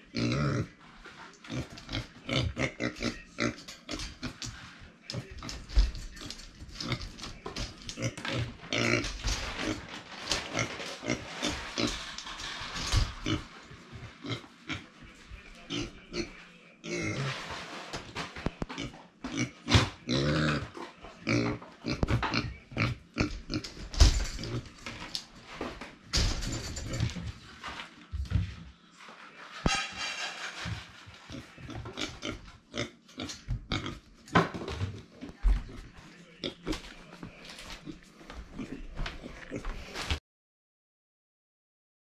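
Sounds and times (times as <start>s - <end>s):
pig grunting and oinking: 0.0s - 0.8s, 1.4s - 4.5s, 6.7s - 12.1s, 13.0s - 13.5s, 14.2s - 14.9s, 15.7s - 17.5s, 18.6s - 23.8s, 24.4s - 24.8s, 31.2s - 34.1s, 37.8s - 40.2s.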